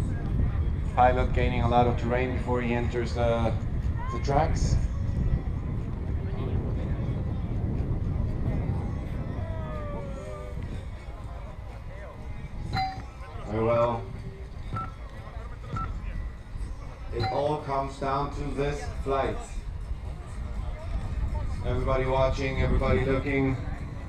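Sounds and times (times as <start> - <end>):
wind rumbling on microphone: 0.0 - 24.0.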